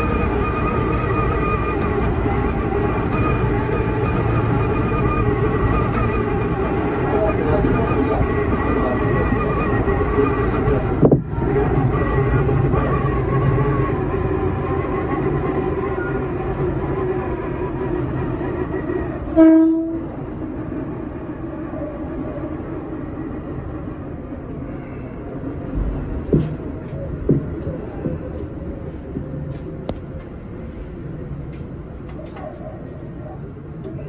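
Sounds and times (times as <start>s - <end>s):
train wheels and motors running: 0.0s - 34.0s
train horn blast: 19.2s - 20.2s.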